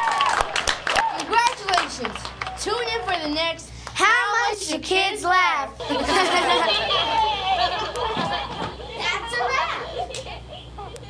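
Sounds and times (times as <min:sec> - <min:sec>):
children chattering: 0:05.8 - 0:11.0
children laughing: 0:05.8 - 0:11.0.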